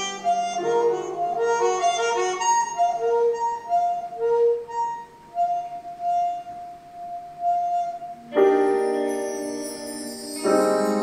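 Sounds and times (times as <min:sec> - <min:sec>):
melodica long held note: 0:00.0 - 0:11.0.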